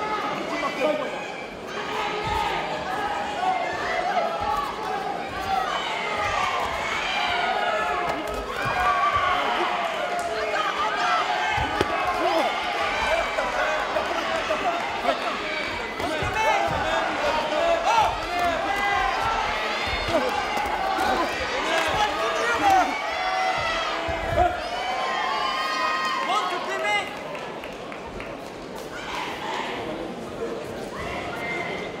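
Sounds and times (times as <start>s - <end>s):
people shouting: 1.3s - 26.3s.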